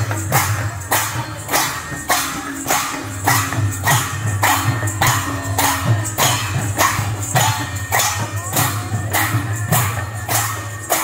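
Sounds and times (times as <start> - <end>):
barrel drums beaten: 0.0 - 11.0
hand cymbals clashing: 0.0 - 11.0.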